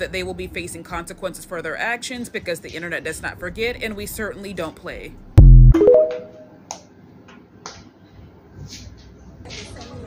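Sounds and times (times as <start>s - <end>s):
pitched chime: 5.5s - 6.5s.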